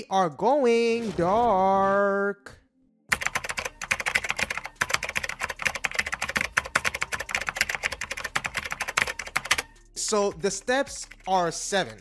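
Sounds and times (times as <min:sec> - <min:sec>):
fast typing on keyboard: 0:03.1 - 0:09.7, 0:10.4 - 0:12.0.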